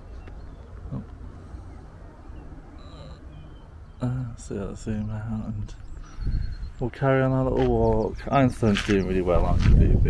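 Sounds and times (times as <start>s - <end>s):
bird chirp: 0.0s - 9.6s
wind rumbling on microphone: 4.8s - 10.0s.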